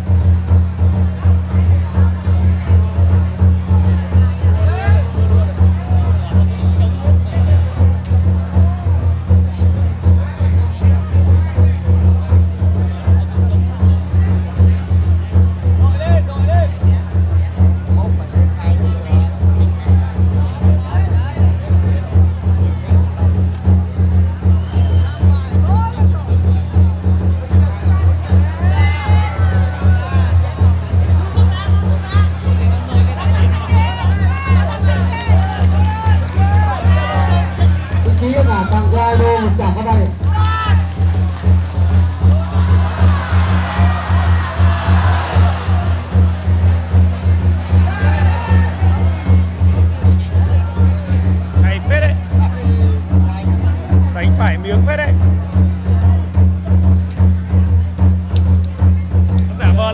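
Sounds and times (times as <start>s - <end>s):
fast steady drumming: 0.0s - 59.9s
crowd calling out: 19.4s - 54.1s.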